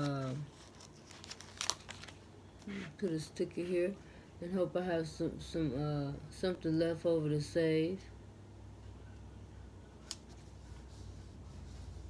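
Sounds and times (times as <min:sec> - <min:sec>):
paper sticker sheet crinkling: 0:00.0 - 0:02.2.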